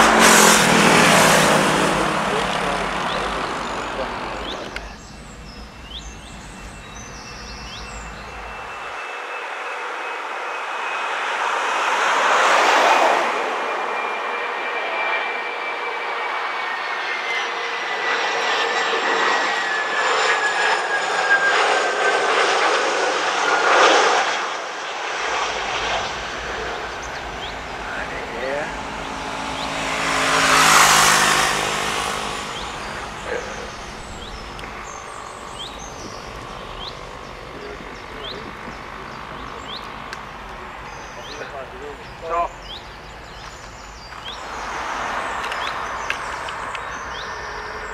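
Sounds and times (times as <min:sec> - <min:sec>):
jet airliner passing overhead: 0:00.0 - 0:47.9
jet engine whine: 0:00.0 - 0:47.9.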